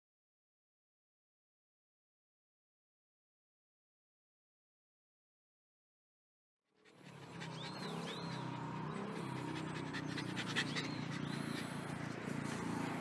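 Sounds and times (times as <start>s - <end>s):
dog panting: 6.8s - 13.0s.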